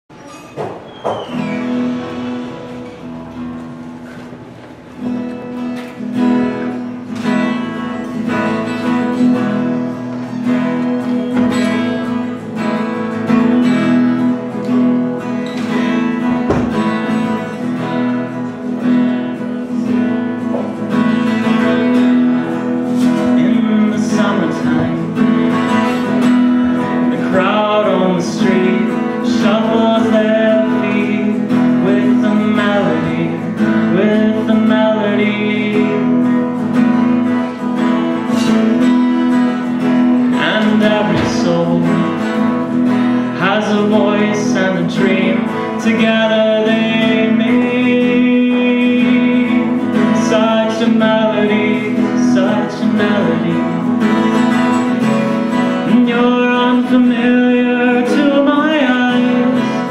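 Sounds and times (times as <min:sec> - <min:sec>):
acoustic guitar strumming: 0:00.1 - 0:59.9.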